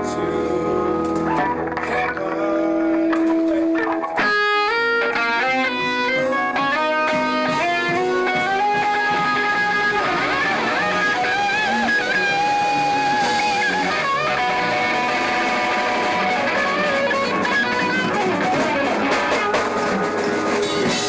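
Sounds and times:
band jamming: 0.0 - 21.0
electric guitar lead line: 0.0 - 21.0.

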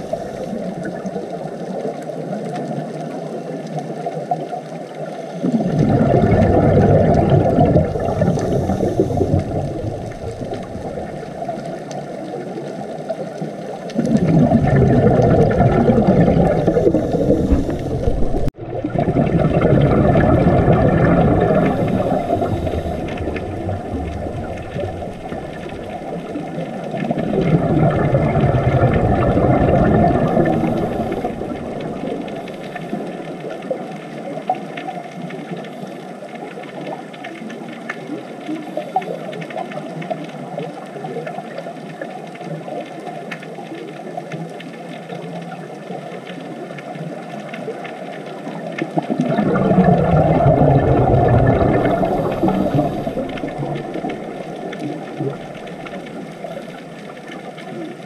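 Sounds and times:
underwater hiss: 0.0 - 1.4, 5.0 - 33.9, 49.2 - 57.4
crackling clicks: 0.0 - 58.0
scuba diver exhaling bubbles: 5.2 - 33.9, 48.7 - 58.0.

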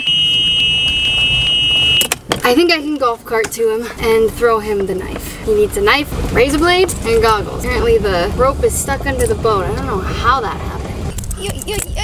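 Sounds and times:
high-pitched warning buzzer: 0.0 - 2.0.

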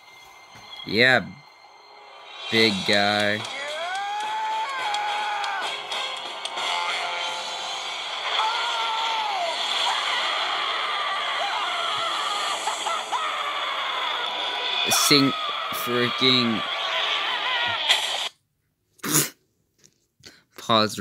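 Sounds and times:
cartoon character screaming: 3.4 - 5.8, 6.6 - 7.3, 8.2 - 18.3.

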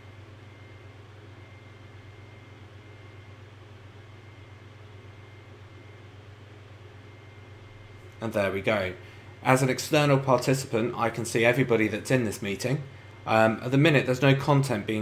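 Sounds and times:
low electrical hum: 0.0 - 15.0.

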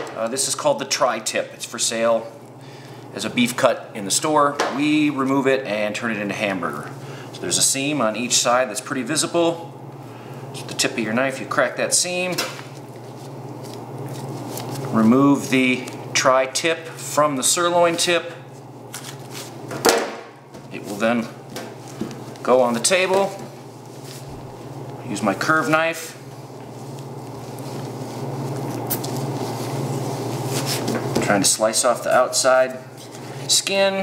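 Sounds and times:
knife scraping and squishing meat: 12.6 - 16.0, 26.6 - 30.9.

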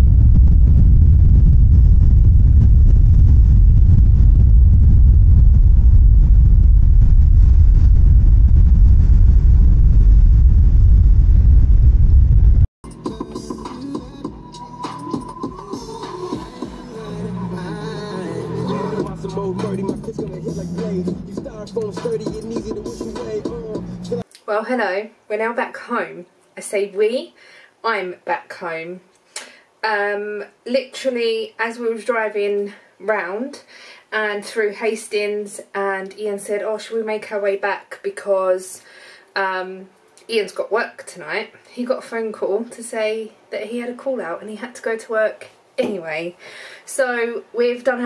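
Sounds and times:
strong wind on microphone: 0.0 - 12.7
background music: 12.8 - 24.2.

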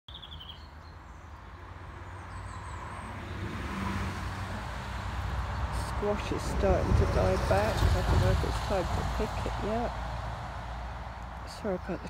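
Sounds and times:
bird chirps: 0.1 - 1.4
traffic rumble: 0.1 - 12.0.

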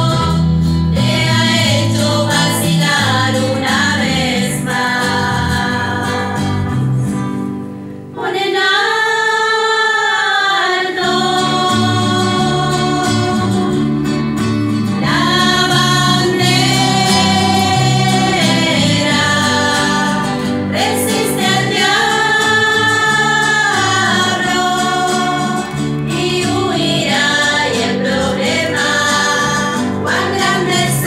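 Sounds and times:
women singing a hymn: 0.0 - 7.1, 8.1 - 14.3, 14.9 - 31.0
acoustic guitar: 0.0 - 31.0.

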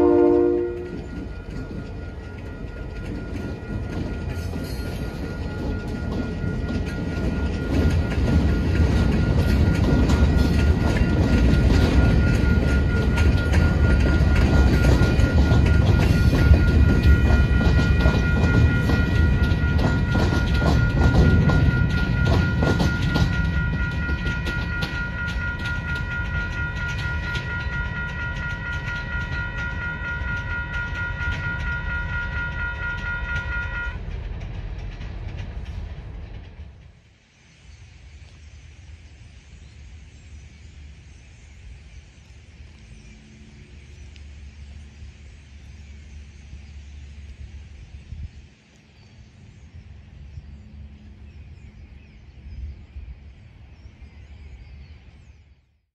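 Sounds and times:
crossing bells ringing: 0.0 - 36.8
wheels clattering on rail joints: 0.0 - 55.8
train rumbling past: 0.0 - 55.9.

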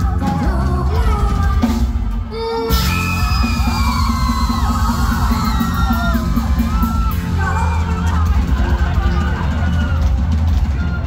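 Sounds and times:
live band playing dance track: 0.0 - 11.0
crowd screaming and cheering: 2.3 - 11.0.

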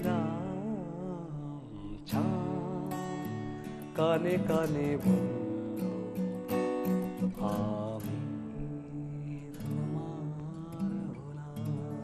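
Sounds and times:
acoustic guitar strumming: 0.0 - 12.0
person singing: 0.0 - 12.0.

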